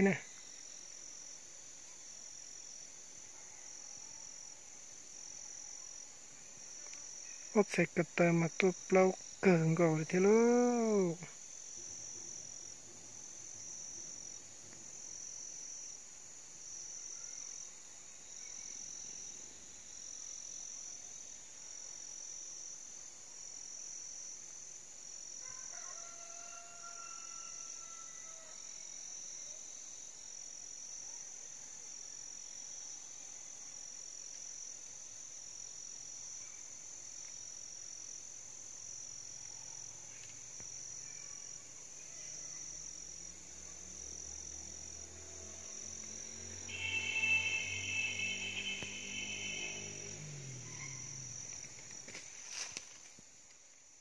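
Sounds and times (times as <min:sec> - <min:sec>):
insects pulsing drone: 0:00.0 - 0:54.0
drawn-out pitched call: 0:46.7 - 0:51.6.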